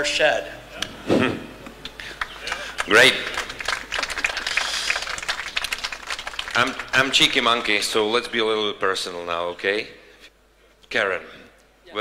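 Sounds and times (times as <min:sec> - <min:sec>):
audience applause: 0:02.0 - 0:07.8.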